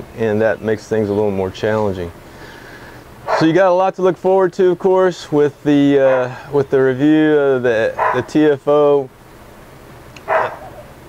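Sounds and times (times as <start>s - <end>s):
small dog barking: 3.3s - 3.5s, 6.1s - 6.4s, 8.0s - 8.3s, 10.2s - 10.9s.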